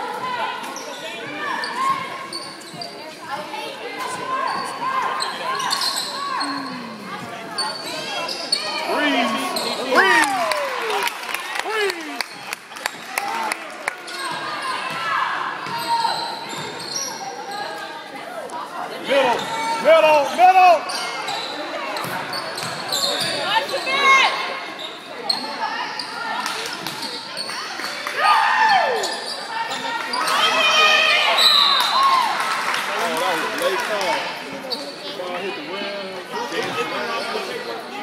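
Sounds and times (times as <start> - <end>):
voices calling out: 4.0 - 12.4.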